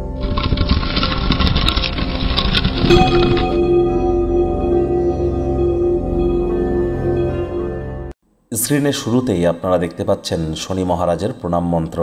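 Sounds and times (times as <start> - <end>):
sustained ringing tone: 2.8 - 8.6.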